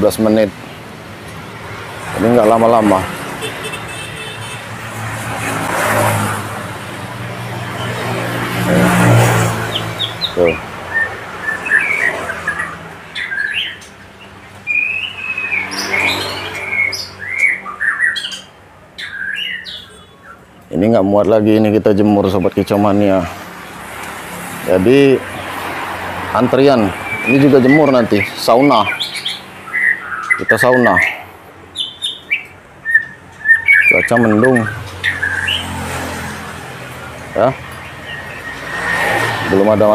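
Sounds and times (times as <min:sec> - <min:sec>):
birds chirping: 0:00.0 - 0:39.9
bird whistled chirps: 0:14.7 - 0:20.4, 0:27.0 - 0:31.2, 0:31.8 - 0:35.6.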